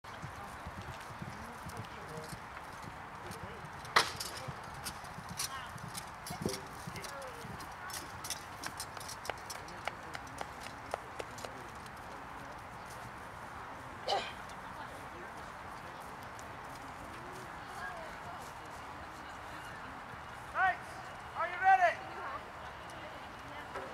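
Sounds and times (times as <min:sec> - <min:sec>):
horse hooves on turf: 0:00.0 - 0:23.9.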